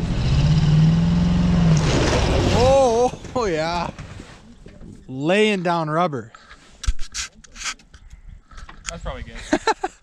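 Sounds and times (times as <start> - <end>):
truck engine running at low revs: 0.0 - 2.5.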